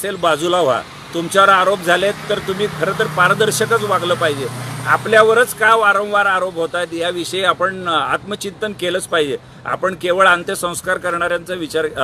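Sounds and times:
man speaking animatedly: 0.0 - 12.0.

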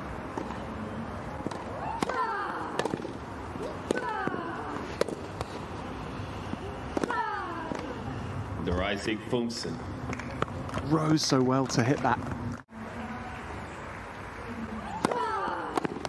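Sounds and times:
racket striking tennis ball: 1.4 - 5.9, 6.5 - 8.0, 15.0 - 16.0.

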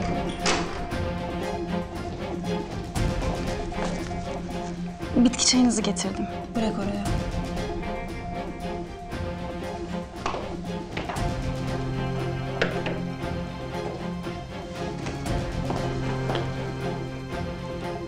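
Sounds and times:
held low music notes: 0.0 - 18.0.

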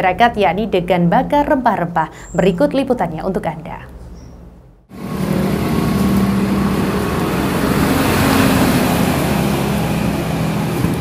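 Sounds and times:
traffic noise wash: 4.4 - 11.0
vehicle engine running: 4.9 - 11.0.

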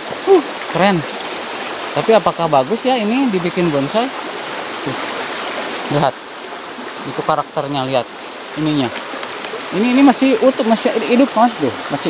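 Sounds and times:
stream water running over stones: 0.0 - 12.0.

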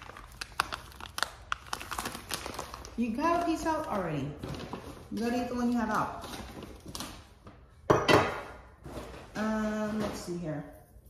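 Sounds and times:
plastic bag crinkling: 0.0 - 7.4.

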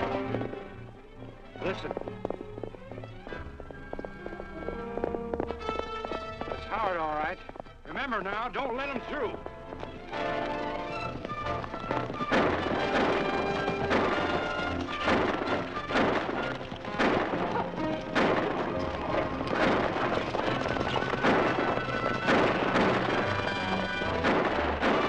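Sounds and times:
sharp cracks: 1.6 - 25.0
dramatic orchestral music: 3.2 - 25.0.

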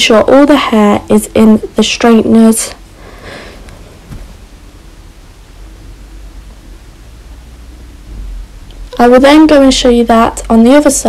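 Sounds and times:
low hum: 0.0 - 11.0
steady background hiss: 0.0 - 11.0.

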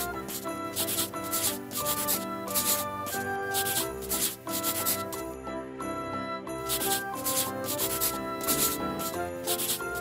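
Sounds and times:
scratchy rubbing strokes: 0.0 - 5.2, 6.7 - 10.0
light instrumental music: 0.0 - 10.0.

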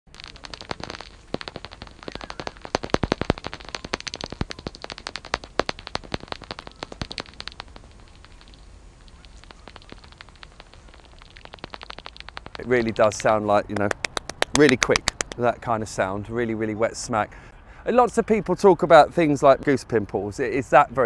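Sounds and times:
wet smacks: 0.1 - 15.5.

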